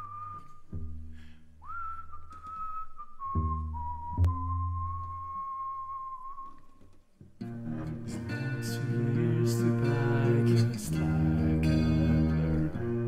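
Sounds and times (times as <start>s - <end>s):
man whistling a melody: 0.0s - 6.9s
strummed acoustic guitar chords: 7.4s - 13.0s.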